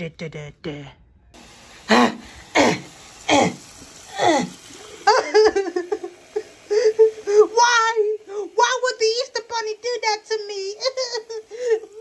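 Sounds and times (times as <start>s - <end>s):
high-pitched voice laughing: 5.0s - 7.6s, 10.6s - 12.0s.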